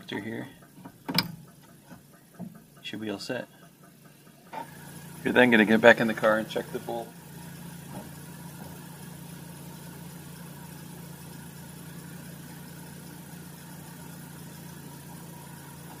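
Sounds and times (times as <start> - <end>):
car engine idling: 0.0 - 16.0.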